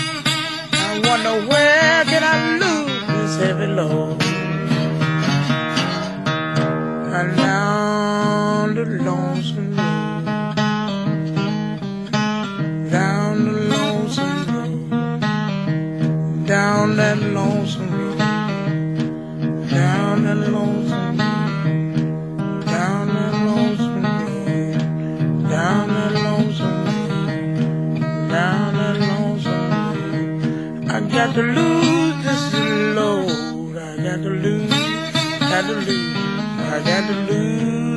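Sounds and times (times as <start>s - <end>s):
blues guitar playing: 0.0s - 37.9s.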